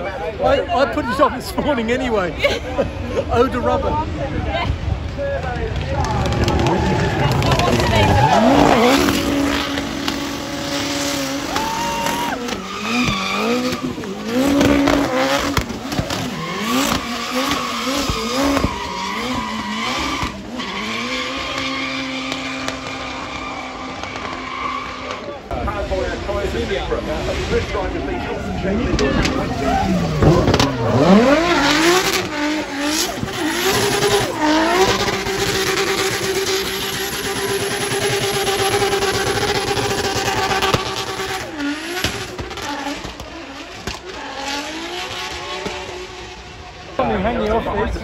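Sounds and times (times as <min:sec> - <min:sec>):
car engine revving: 0:00.0 - 0:48.0
tyres squealing: 0:06.5 - 0:25.4.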